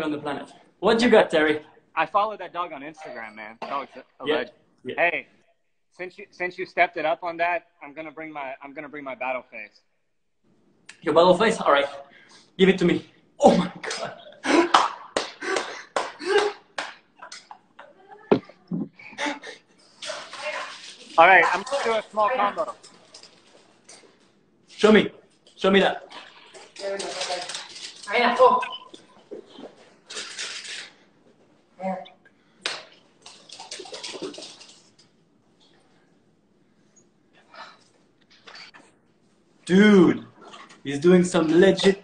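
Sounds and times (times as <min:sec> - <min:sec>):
hands clapping: 0:13.9 - 0:17.6, 0:32.6 - 0:34.7.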